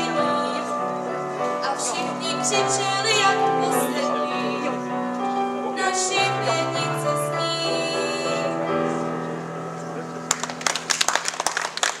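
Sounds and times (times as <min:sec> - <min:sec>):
held chord of backing music: 0:00.0 - 0:12.0
audience applause: 0:10.3 - 0:12.0.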